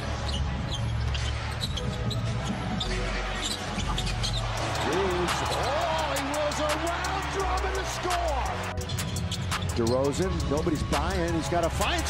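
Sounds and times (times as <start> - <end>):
shoe squeaks: 0.0 - 5.7, 8.8 - 10.9.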